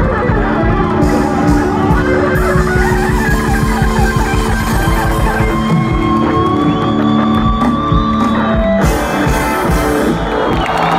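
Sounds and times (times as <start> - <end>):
live rock band playing: 0.0 - 10.9.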